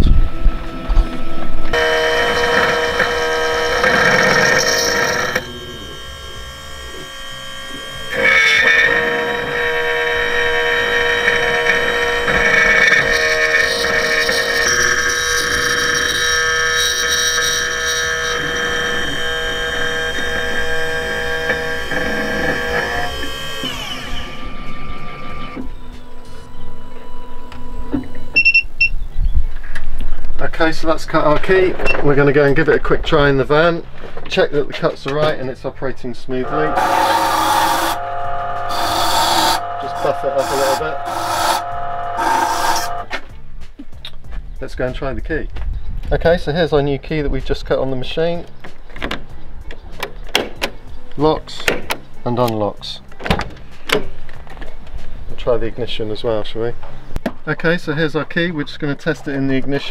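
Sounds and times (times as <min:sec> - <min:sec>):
key-cutting machine whine: 0:00.3 - 0:28.6, 0:36.4 - 0:43.1.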